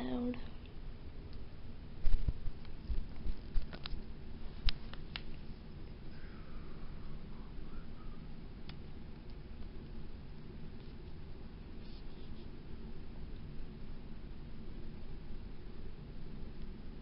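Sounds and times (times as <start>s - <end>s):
room background: 0.0s - 17.0s.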